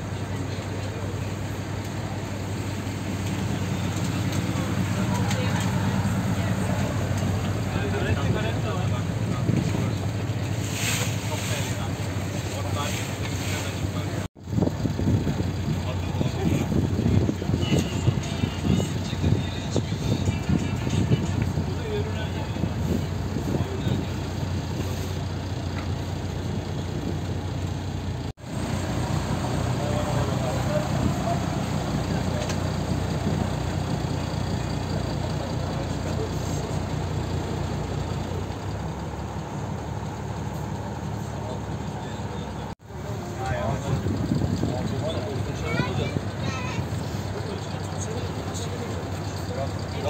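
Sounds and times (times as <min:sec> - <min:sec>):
boat engine droning: 0:00.0 - 0:50.0
passengers talking: 0:00.0 - 0:50.0.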